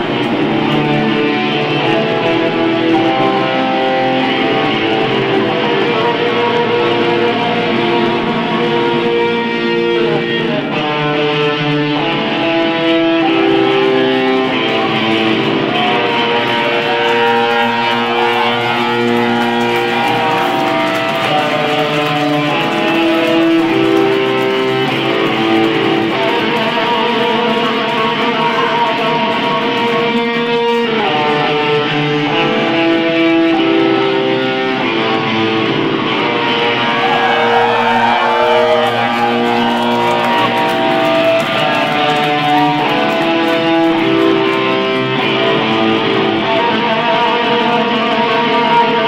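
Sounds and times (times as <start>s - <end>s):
electric guitar chords: 0.0s - 49.0s
live band music: 0.0s - 49.0s.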